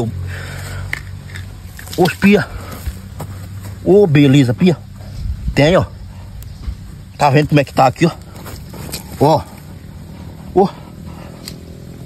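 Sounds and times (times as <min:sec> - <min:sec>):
wooden stick scraping soil: 0:00.4 - 0:03.8, 0:07.3 - 0:09.7.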